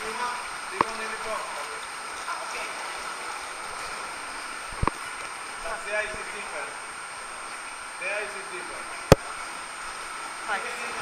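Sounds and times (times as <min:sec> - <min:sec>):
rushing water: 0:00.0 - 0:11.0.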